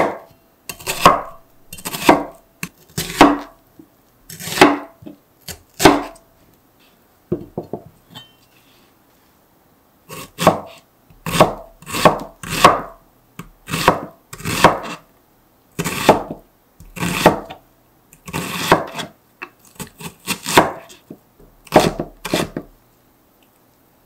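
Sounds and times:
knife chopping on cutting board: 0:00.0 - 0:02.4, 0:03.0 - 0:03.6, 0:04.3 - 0:06.2, 0:10.1 - 0:12.9, 0:13.7 - 0:15.0, 0:15.8 - 0:17.6, 0:18.3 - 0:19.1, 0:19.8 - 0:21.0, 0:21.7 - 0:22.7.

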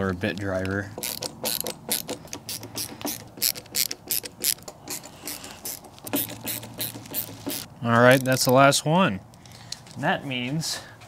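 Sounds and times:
ratcheting screwdriver clicking: 0:00.6 - 0:08.5.

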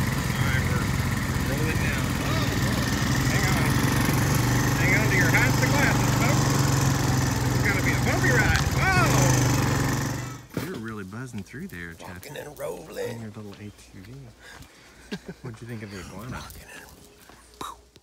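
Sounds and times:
atv engine running: 0:00.0 - 0:11.2.

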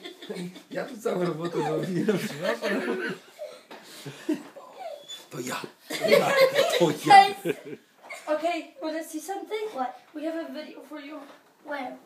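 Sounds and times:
people laughing softly: 0:00.0 - 0:05.0.

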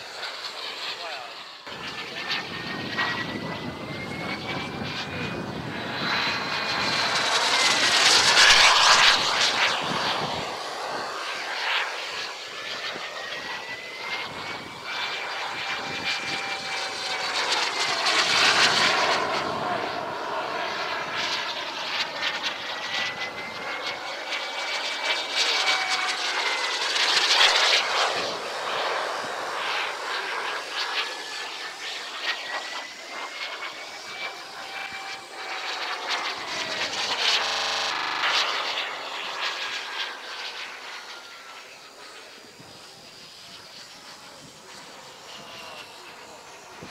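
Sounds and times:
model jet engine whine: 0:00.0 - 0:46.9.

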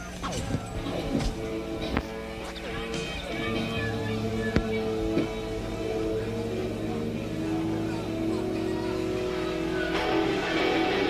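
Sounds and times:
electric guitar droning note: 0:00.4 - 0:11.0.

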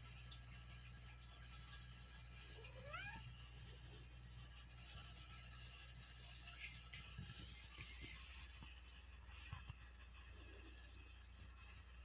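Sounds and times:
cat meowing: 0:02.6 - 0:03.3.

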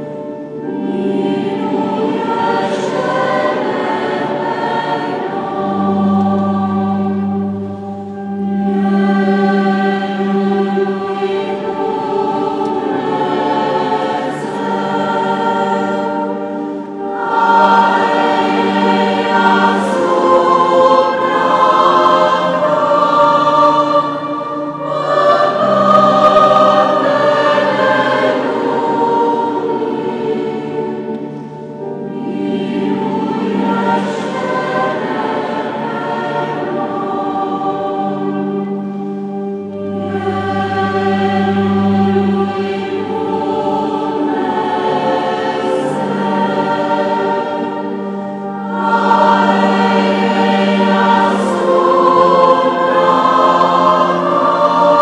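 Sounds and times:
church choir singing: 0:00.0 - 0:55.0.

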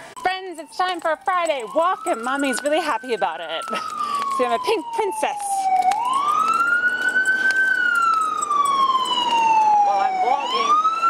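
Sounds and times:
emergency vehicle siren wailing: 0:00.0 - 0:11.0.

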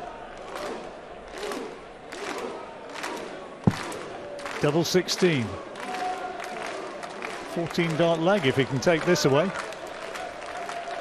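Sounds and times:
sharp knock: 0:03.7 - 0:03.9.

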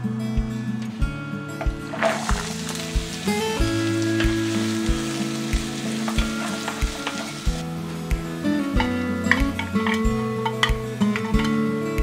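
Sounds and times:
background music with steady beat: 0:00.0 - 0:12.0
onions and garlic sizzling in oil: 0:01.6 - 0:11.4.

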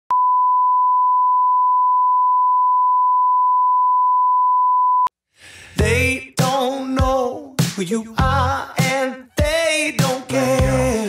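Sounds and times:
music: 0:05.5 - 0:11.0.

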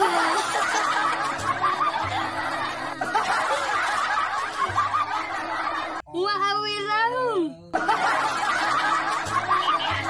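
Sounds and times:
people laughing: 0:00.0 - 0:06.0, 0:07.7 - 0:10.0.

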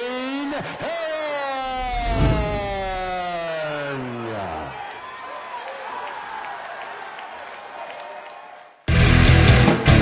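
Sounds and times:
low thump: 0:01.8 - 0:03.2.

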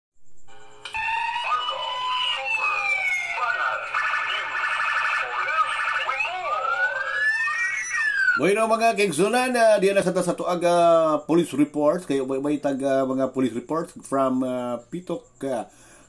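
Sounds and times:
synthesized siren-like sound effects: 0:00.6 - 0:08.5.

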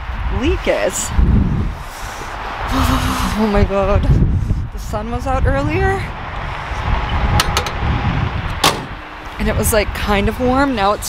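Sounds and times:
wind buffeting microphone: 0:00.0 - 0:11.0
microphone handling clicks: 0:07.4 - 0:07.9.

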